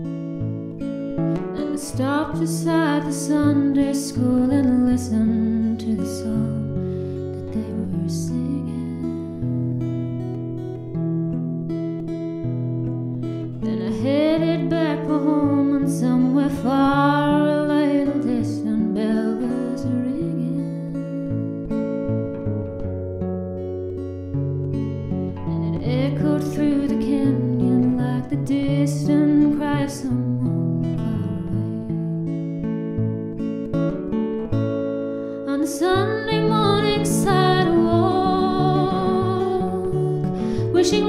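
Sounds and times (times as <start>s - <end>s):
fingerpicked acoustic guitar: 0.0s - 41.0s
woman singing: 1.4s - 9.8s, 13.6s - 21.2s, 25.3s - 32.2s, 35.4s - 41.0s.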